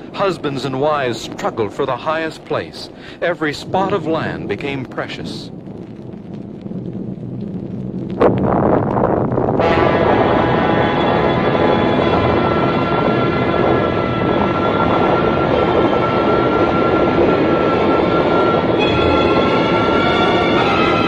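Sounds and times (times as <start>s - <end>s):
roar of rushing water and storm: 0.0s - 21.0s
dramatic music tones: 7.3s - 21.0s.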